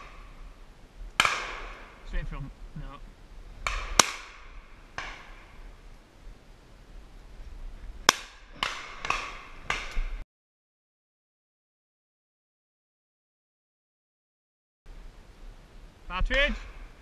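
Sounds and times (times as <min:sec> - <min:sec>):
shotgun shots: 0:01.2 - 0:02.0, 0:03.6 - 0:05.6.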